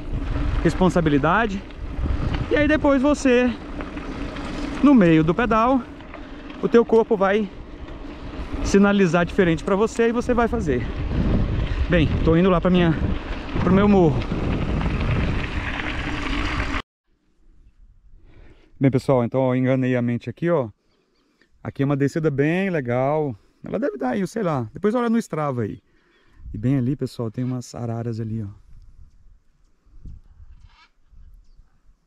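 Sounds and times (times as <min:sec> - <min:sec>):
bike tyres rumbling on dirt: 0:00.0 - 0:16.8
wind buffeting microphone: 0:00.0 - 0:16.8, 0:28.6 - 0:32.0.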